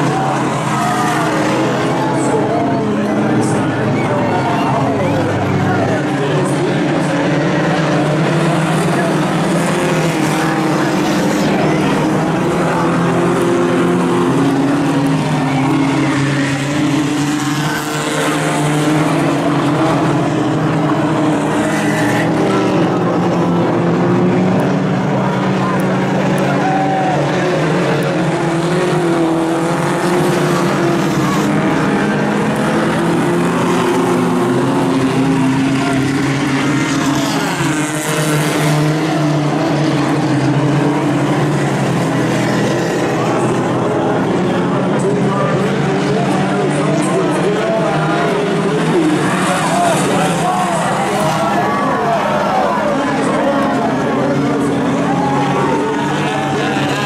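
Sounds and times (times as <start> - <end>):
race car engines at high revs: 0.0 - 57.0.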